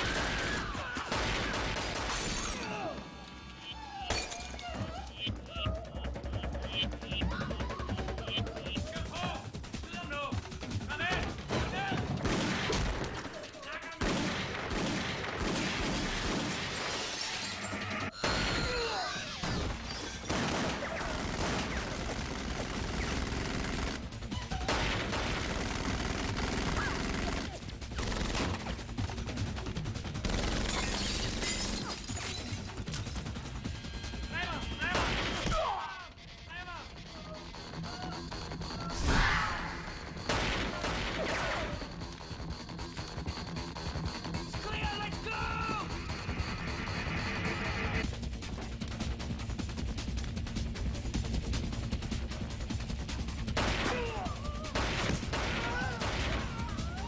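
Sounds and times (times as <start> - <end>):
gunfire and impacts: 11.0 - 16.9, 19.4 - 31.8, 40.0 - 42.0, 53.4 - 56.7.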